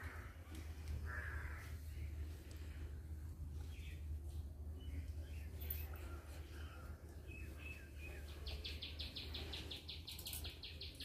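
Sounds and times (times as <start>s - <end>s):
steady low rumble: 0.0s - 9.7s.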